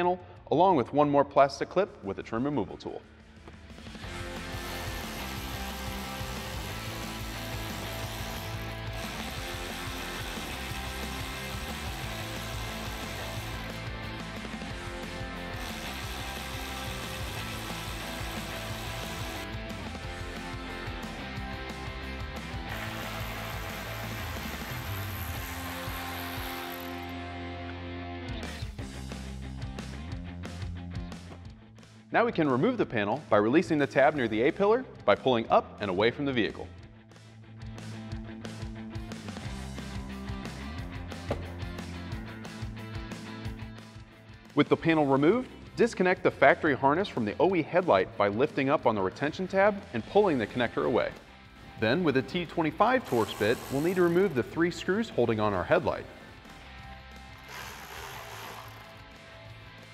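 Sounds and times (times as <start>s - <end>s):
background music: 0.0s - 59.9s
cordless electric ratchet whirring: 4.0s - 19.6s, 22.7s - 27.1s, 53.0s - 54.4s, 57.2s - 59.6s.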